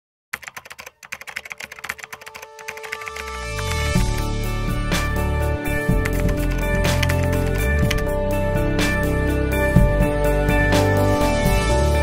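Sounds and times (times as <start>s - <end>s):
rapid clicks: 0.4s - 3.4s, 5.9s - 8.1s
opening music: 2.4s - 12.0s.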